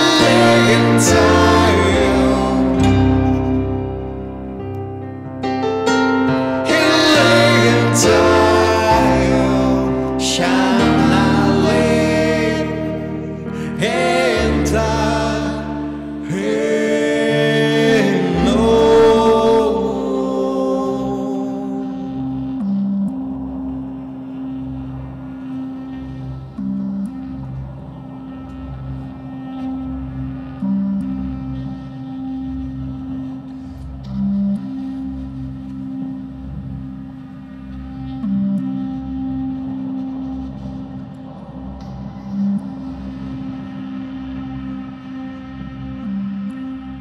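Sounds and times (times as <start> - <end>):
low drone note: 0.0 - 47.0
soft low pulse: 6.4 - 47.0.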